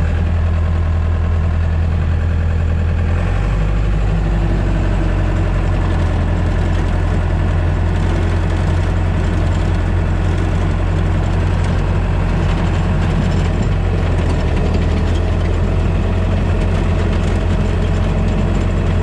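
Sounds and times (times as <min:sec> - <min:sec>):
diesel engine running: 0:00.0 - 0:19.0.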